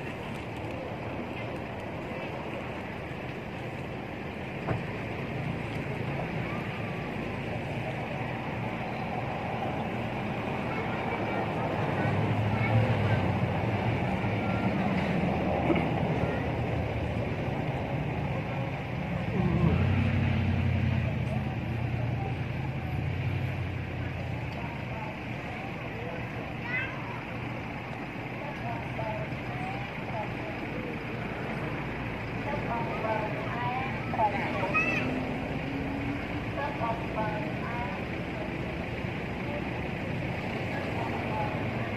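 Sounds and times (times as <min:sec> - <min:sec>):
low engine rumble: 0:00.0 - 0:41.9.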